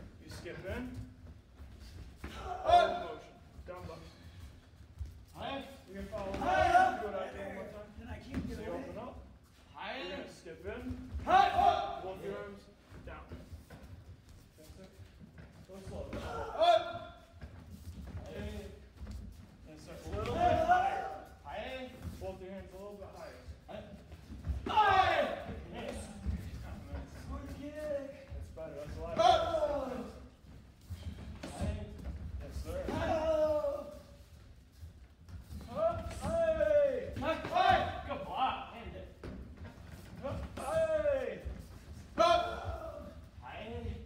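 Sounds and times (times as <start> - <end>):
people shouting martial arts yells: 2.3 - 3.1, 6.2 - 7.2, 11.2 - 12.1, 16.2 - 17.2, 20.2 - 21.4, 24.6 - 25.5, 29.1 - 30.2, 32.7 - 34.0, 35.7 - 38.6, 42.2 - 43.2.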